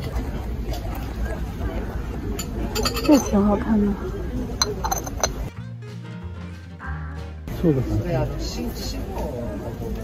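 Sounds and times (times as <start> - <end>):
ceramic lid clinking on teapot: 2.4 - 3.4, 4.6 - 5.5
background music: 5.5 - 8.6.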